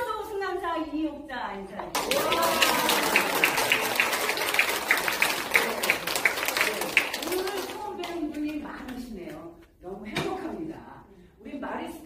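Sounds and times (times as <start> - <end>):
audience applauding: 2.0 - 8.0.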